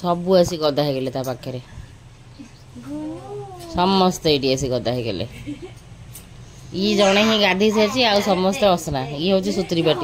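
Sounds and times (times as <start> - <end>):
woman speaking loudly: 6.8 - 10.0.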